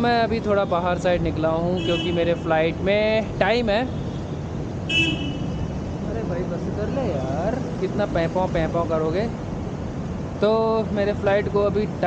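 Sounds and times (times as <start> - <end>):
road traffic noise: 0.0 - 12.0
vehicle horn honk: 1.8 - 2.2, 4.9 - 5.6.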